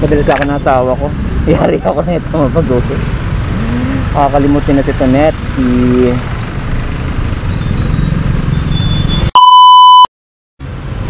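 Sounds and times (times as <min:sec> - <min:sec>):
scooter engine and road noise: 0:00.0 - 0:09.3, 0:10.6 - 0:11.0
censor bleep: 0:09.1 - 0:10.1.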